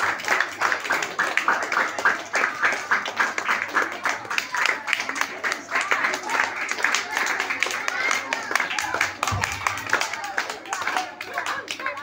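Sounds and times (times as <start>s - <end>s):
audience clapping: 0.0s - 12.0s.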